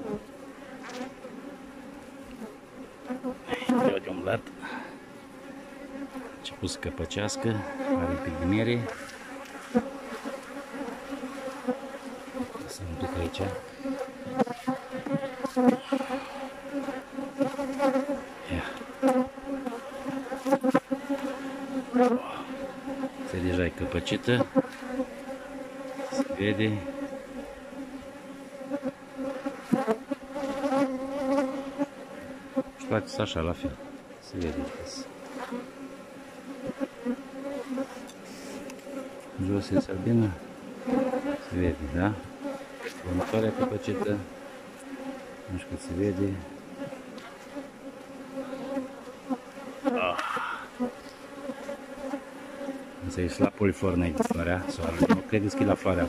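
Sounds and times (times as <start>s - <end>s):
bees buzzing: 0.0s - 56.0s
honeybees humming: 0.0s - 56.0s.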